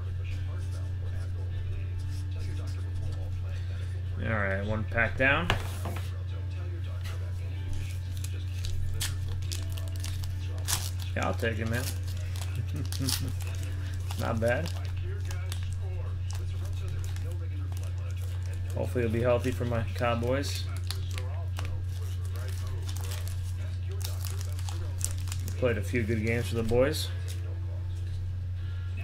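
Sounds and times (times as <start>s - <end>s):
low electrical hum: 0.0s - 29.0s
faint voices: 5.5s - 28.3s
wrapper tearing and crinkling: 8.1s - 27.4s.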